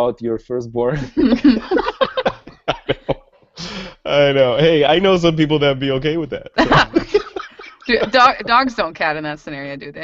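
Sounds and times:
people laughing: 0:00.9 - 0:04.2, 0:06.1 - 0:08.9
breathy burst: 0:02.9 - 0:04.1.

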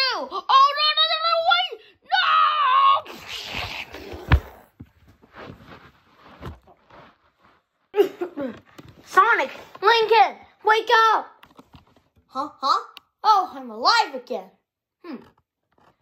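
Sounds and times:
child screaming: 0:00.0 - 0:03.4
phone handling rustle: 0:11.4 - 0:12.3.

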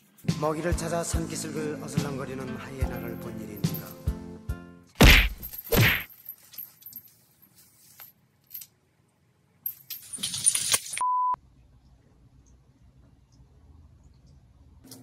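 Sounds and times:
background music: 0:00.0 - 0:05.0
short electronic beep: 0:11.0 - 0:11.4.

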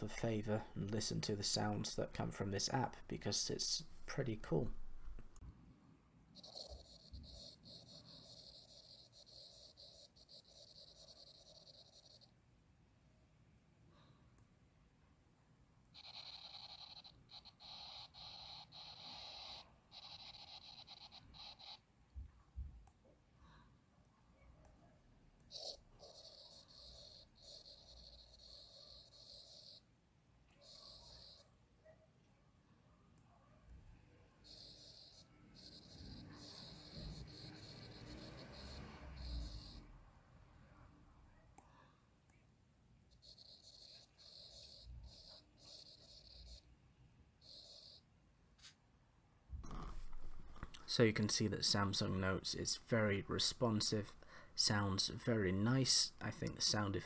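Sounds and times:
soft pen scratching: 0:06.4 - 0:12.3, 0:25.5 - 0:29.8, 0:30.6 - 0:31.4, 0:34.4 - 0:39.8, 0:43.2 - 0:46.6, 0:49.6 - 0:50.8.

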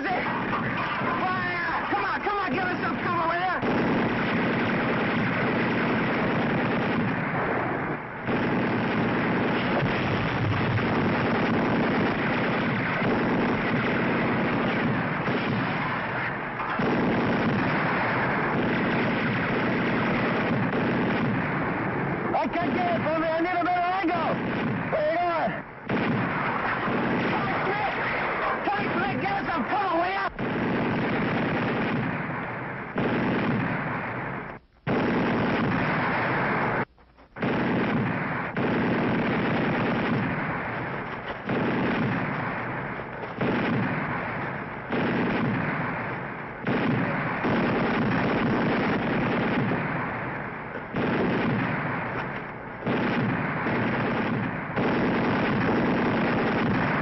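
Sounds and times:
gunfire: 0:00.0 - 0:57.0
heavy blasts: 0:00.0 - 0:57.0.

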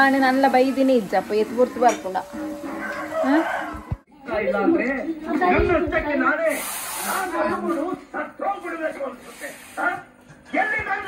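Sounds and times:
people talking: 0:00.0 - 0:02.3
high hiss: 0:06.4 - 0:07.4.

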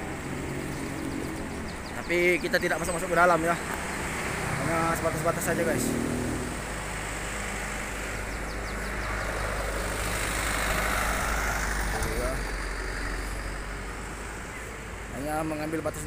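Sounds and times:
vehicle passing close by: 0:00.0 - 0:15.0
steady low traffic rumble: 0:00.0 - 0:16.0.

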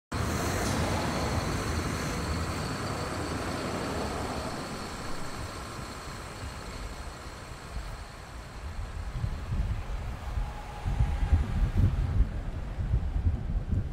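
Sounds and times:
bus driving off: 0:00.1 - 0:13.8.

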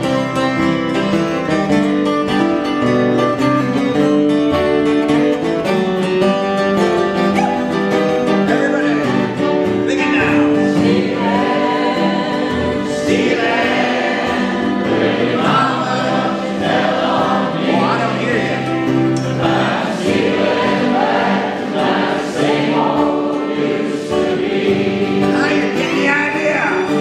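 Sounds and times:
strummed acoustic guitars: 0:00.0 - 0:27.0
audience and band singing: 0:07.3 - 0:27.0.

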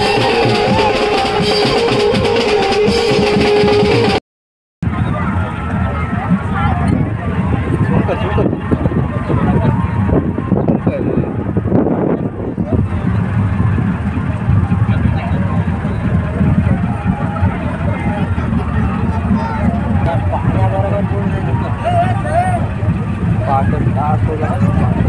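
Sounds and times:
boat engine drone: 0:00.0 - 0:04.2, 0:04.8 - 0:25.0
indistinct voices talking: 0:00.0 - 0:04.2, 0:04.8 - 0:25.0.

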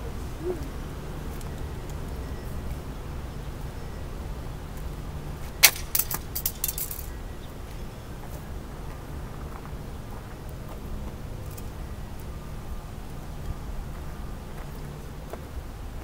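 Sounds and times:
sharp clicks and clinks: 0:05.6 - 0:07.1.

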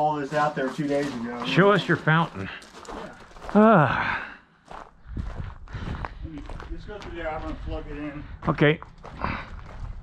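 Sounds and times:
person speaking: 0:00.0 - 0:04.0
footsteps on gravel: 0:00.0 - 0:10.0.

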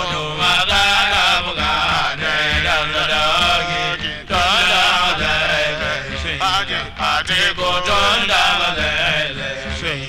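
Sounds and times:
voices chanting a melody: 0:00.0 - 0:10.0.

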